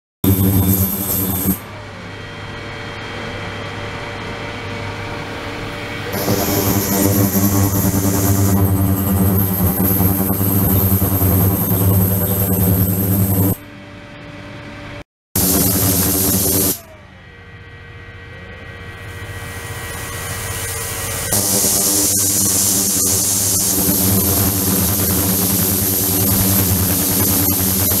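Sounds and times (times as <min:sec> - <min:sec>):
loud mains buzz: 0:00.2 - 0:28.0
pump hum with faint whine: 0:00.2 - 0:28.0
steady electrical hum: 0:15.4 - 0:28.0.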